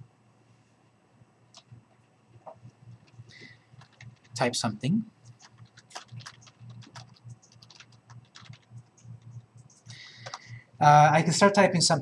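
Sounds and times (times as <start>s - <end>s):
computer keyboard typing: 2.9s - 4.6s, 5.2s - 10.6s.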